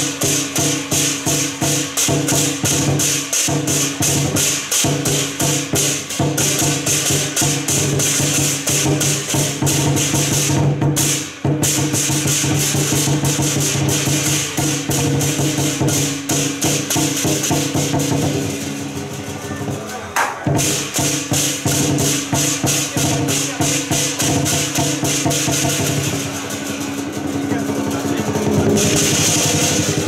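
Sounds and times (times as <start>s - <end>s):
barrel drum beaten fast: 0.0s - 30.0s
hand cymbals clashing: 0.0s - 30.0s.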